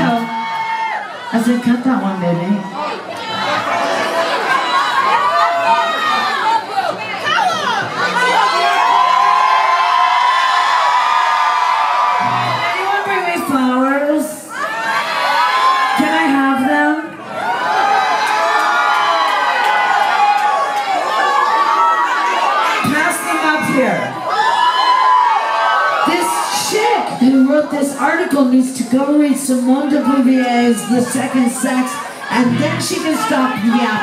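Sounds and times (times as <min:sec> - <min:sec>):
crowd cheering and whooping: 0:00.0 - 0:01.3, 0:02.7 - 0:13.2, 0:14.4 - 0:16.2, 0:17.2 - 0:27.1, 0:30.4 - 0:34.0.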